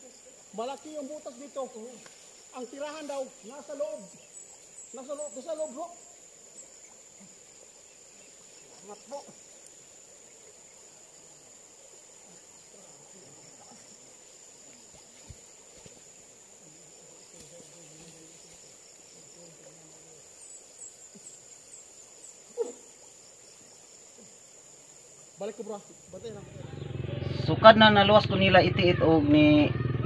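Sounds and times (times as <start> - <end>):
man calling out: 4.9 - 6.0.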